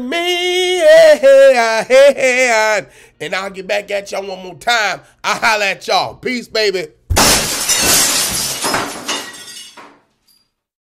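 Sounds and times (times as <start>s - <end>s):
glass shattering: 7.1s - 10.6s
tinkling glass debris: 7.2s - 10.6s.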